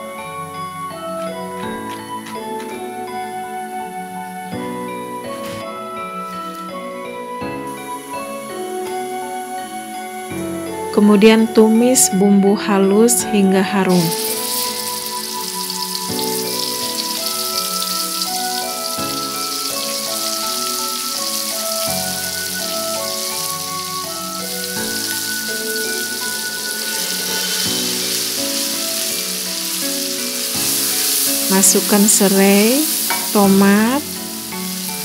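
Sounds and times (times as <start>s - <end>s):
background music of held notes: 0.0s - 35.0s
spice paste sizzling in oil: 5.8s - 12.1s, 13.9s - 35.0s.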